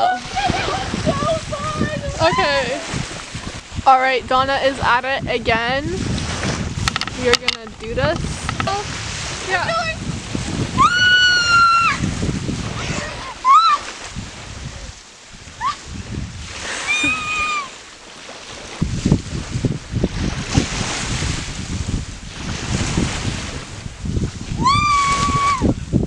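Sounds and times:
wind noise on microphone: 0.0s - 26.0s.

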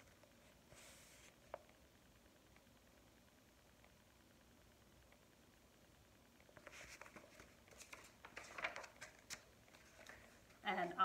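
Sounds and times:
book pages turning: 6.6s - 10.6s.

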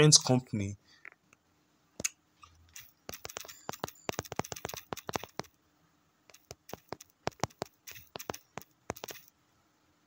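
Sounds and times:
taps on smartphone keyboard: 2.8s - 5.5s, 6.3s - 9.3s.

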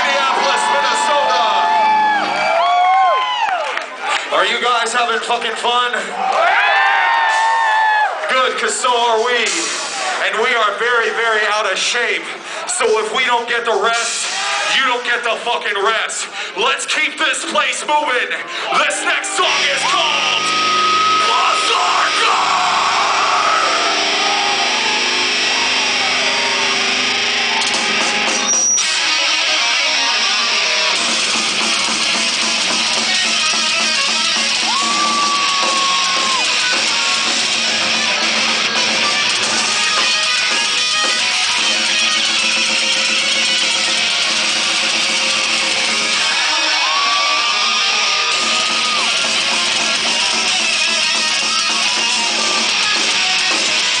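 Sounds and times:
live metal band playing: 0.0s - 2.8s, 8.6s - 12.0s, 18.5s - 54.0s
bending lead guitar note: 19.4s - 35.3s.

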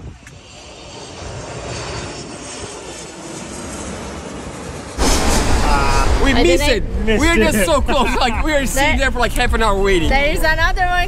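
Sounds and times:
jet engines rushing: 0.0s - 10.8s.

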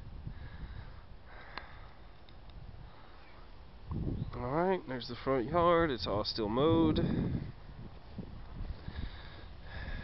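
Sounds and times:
low wind rumble on microphone: 0.0s - 10.0s.

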